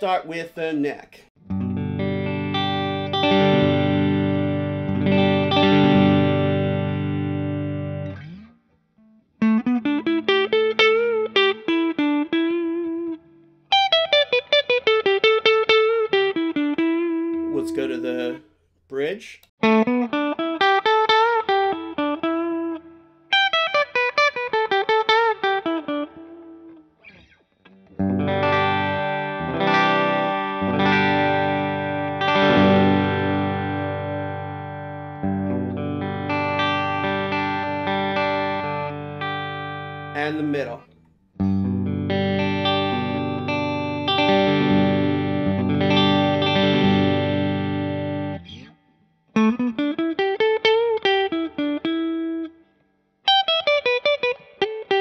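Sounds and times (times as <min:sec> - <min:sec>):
electric guitar chords ringing: 0:01.4 - 0:18.4, 0:19.0 - 0:52.6, 0:53.3 - 0:55.0
electric guitar lead phrases: 0:01.4 - 0:52.7, 0:53.3 - 0:55.0.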